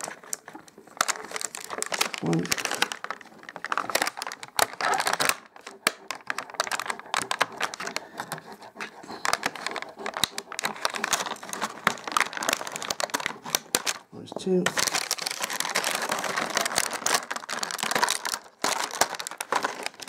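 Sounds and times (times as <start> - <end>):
plastic packaging crinkling: 0.0 - 20.0.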